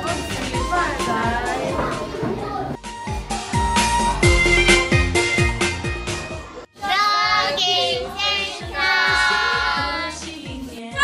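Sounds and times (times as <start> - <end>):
backing track with drum beat: 0.0 - 6.5
music track: 0.0 - 10.2
child singing: 6.8 - 11.0.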